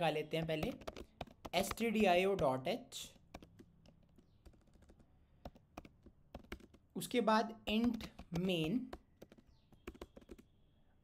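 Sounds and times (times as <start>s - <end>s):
computer keyboard keystrokes: 0.4s - 2.5s, 3.2s - 6.9s, 7.6s - 10.5s.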